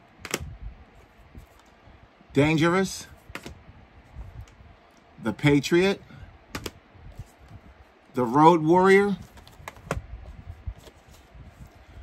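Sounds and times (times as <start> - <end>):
plastic cases clicking: 6.5 - 6.8.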